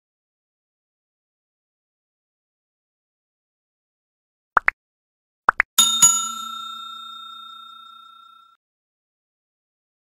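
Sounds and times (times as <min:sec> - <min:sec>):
small bell ding: 0:05.8 - 0:08.6.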